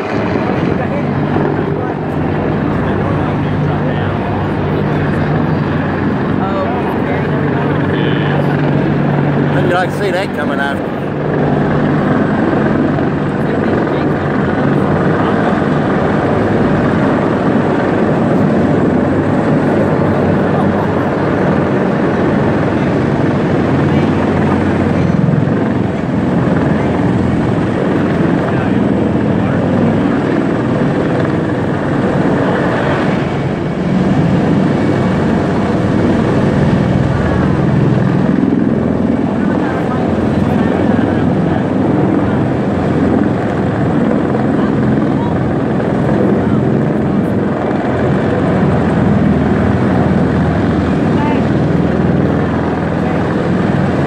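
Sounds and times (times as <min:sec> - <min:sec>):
helicopter flying low overhead: 0:00.0 - 0:54.0.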